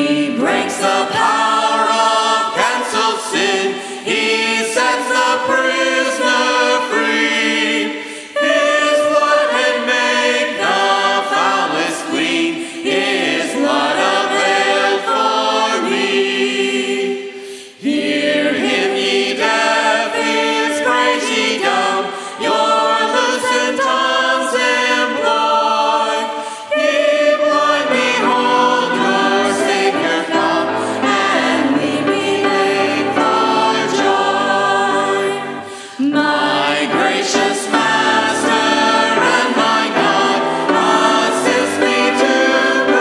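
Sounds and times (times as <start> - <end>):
congregation singing a hymn: 0.0 - 43.0
piano: 0.0 - 43.0.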